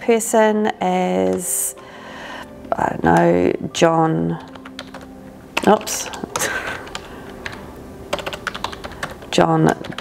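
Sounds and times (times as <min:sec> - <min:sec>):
computer keyboard typing: 0:01.2 - 0:01.8, 0:04.3 - 0:10.0.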